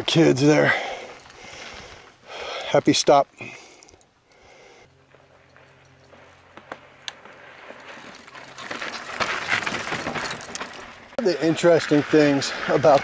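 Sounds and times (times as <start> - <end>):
tyre and wind noise: 6.2 - 13.0.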